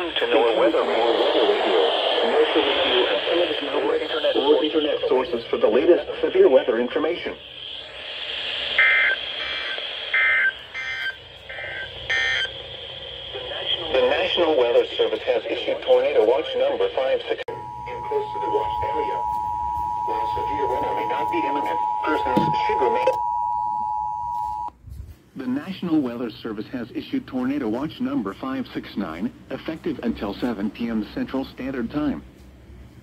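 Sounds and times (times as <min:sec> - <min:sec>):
radio hiss: 0:00.0 - 0:23.2
two-tone digital data bursts: 0:08.8 - 0:12.6
two-tone alert signal: 0:17.5 - 0:24.7.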